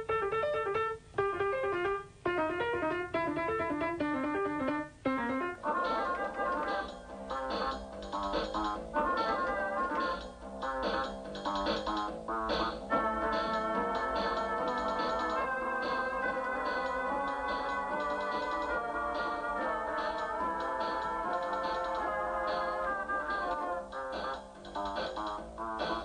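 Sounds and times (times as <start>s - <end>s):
electronic keyboard jazz vamp: 0.0s - 26.0s.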